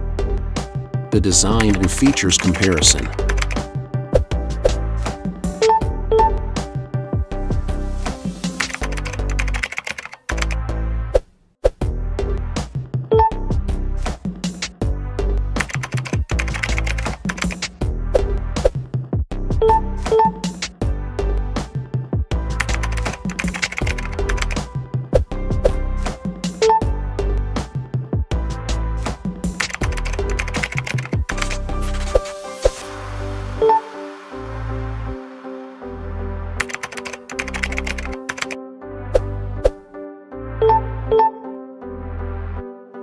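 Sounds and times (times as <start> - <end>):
background music with bass line: 0.0 - 9.4, 11.8 - 43.0
music with clicky percussion: 1.4 - 3.8, 8.1 - 10.6, 15.6 - 18.8, 22.4 - 26.9, 29.2 - 32.4, 36.6 - 38.6.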